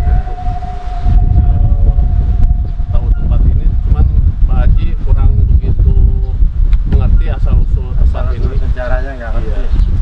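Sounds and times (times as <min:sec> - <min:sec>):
steady drone: 0:00.0 - 0:04.8
wind rumbling on microphone: 0:00.0 - 0:10.0.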